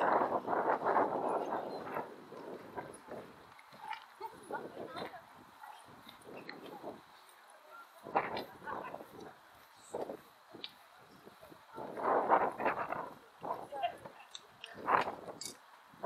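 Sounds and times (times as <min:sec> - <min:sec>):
footsteps on walkway: 0:00.0 - 0:15.8
passers-by talking: 0:00.0 - 0:16.0.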